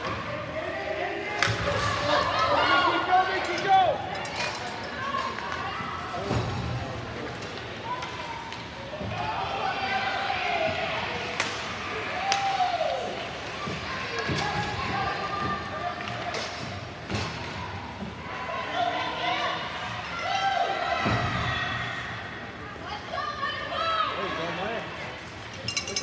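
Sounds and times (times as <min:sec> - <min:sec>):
players and spectators shouting: 0:00.0 - 0:06.4, 0:07.8 - 0:16.6, 0:17.2 - 0:25.3
hockey sticks clacking on puck: 0:03.2 - 0:05.7, 0:11.3 - 0:17.6.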